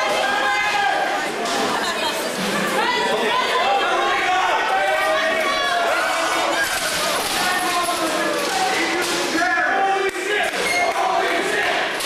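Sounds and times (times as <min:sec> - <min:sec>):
crowd shouting in echoing hall: 0:00.0 - 0:12.0.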